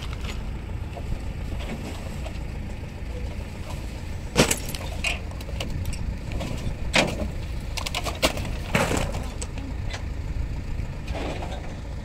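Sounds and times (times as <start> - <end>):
heavy machine engine running: 0.0 - 12.0.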